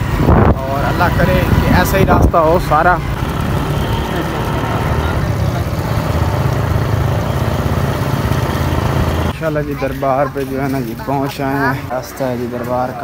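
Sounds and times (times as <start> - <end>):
motorcycle engine running: 0.0 - 9.5
wind and road noise: 0.0 - 13.0.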